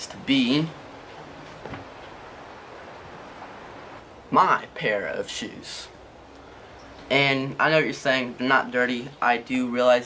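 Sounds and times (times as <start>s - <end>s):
towel rustling: 0.8s - 4.0s.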